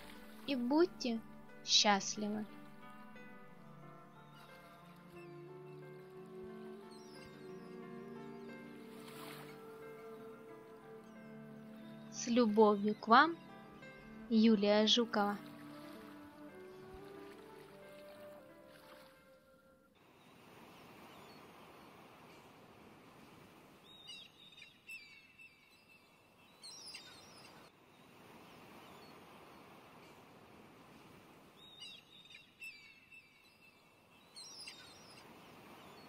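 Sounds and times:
soft background music: 0.0s - 20.3s
bird chirps: 23.8s - 27.7s, 31.6s - 36.0s.

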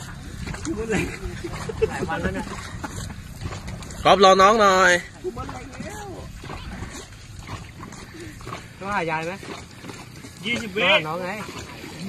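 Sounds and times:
paddles stroking water: 0.0s - 12.0s
splashes and knocks from strokes: 0.0s - 12.0s.

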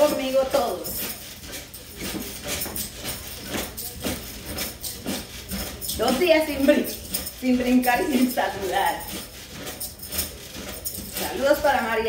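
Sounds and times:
mini trampoline bouncing: 0.0s - 12.0s.

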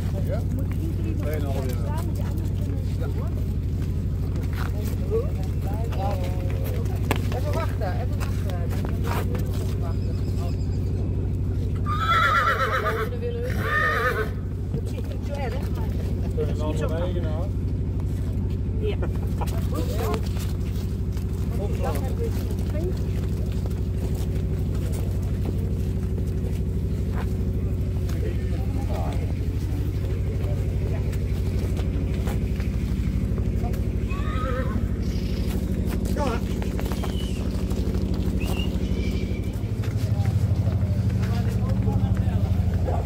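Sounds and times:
hooves clopping on pavement: 0.0s - 43.0s
low engine hum: 0.0s - 43.0s
pony whinnying: 11.8s - 14.4s, 34.0s - 35.6s.

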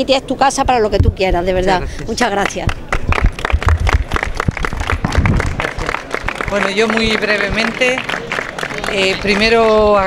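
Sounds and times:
small group clapping: 2.3s - 10.0s.

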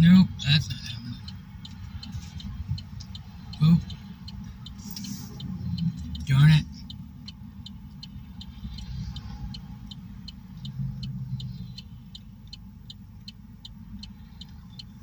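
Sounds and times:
car road and engine rumble: 0.0s - 15.0s
turn signal ticking: 0.0s - 15.0s.

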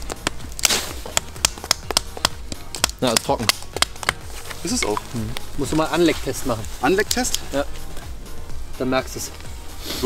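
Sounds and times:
wood splintering crack: 0.0s - 4.2s
wet wood cracking and snapping: 0.0s - 5.5s.

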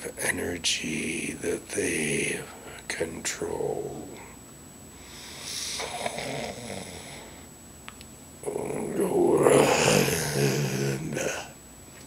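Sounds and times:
man breathing deeply: 4.9s - 7.5s
low voiced groan: 8.4s - 11.6s.

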